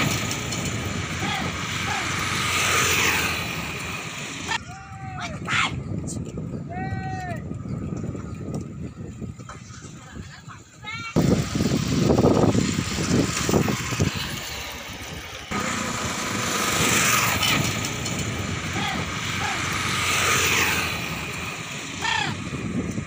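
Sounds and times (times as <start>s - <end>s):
vehicle road and wind noise: 0.0s - 23.0s
wind buffeting microphone: 0.0s - 23.0s
rising and falling calls: 18.7s - 22.5s.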